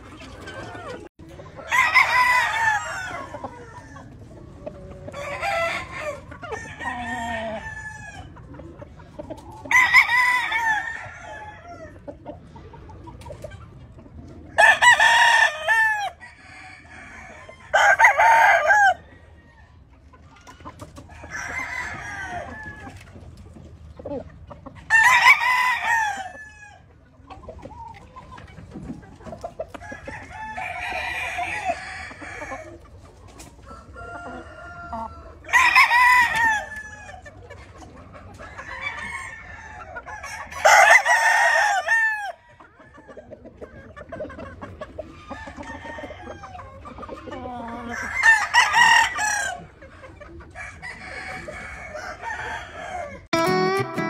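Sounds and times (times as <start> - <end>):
roosters crowing: 0.0 - 8.4, 9.6 - 12.1, 14.5 - 19.9, 20.8 - 23.1, 24.8 - 26.9, 29.6 - 32.8, 33.6 - 37.4, 38.4 - 43.4, 45.1 - 49.8, 50.4 - 54.0.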